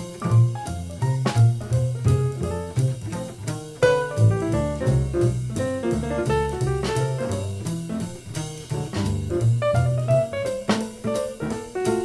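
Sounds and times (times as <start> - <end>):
double bass: 0.0 - 12.0
drum kit and cymbals: 0.0 - 12.0
piano notes: 0.0 - 12.0.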